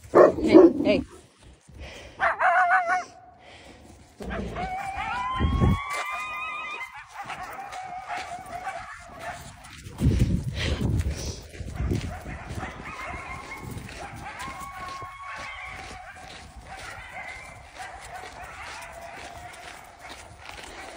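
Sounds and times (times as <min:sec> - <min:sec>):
distant coyotes howling: 0:04.2 - 0:09.4, 0:12.4 - 0:20.2.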